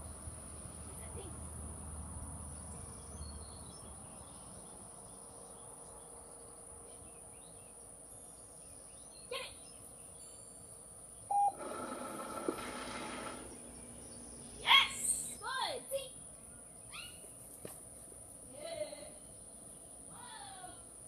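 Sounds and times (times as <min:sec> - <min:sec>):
short beep: 0:11.3 - 0:11.6
motor whirring: 0:11.3 - 0:15.3.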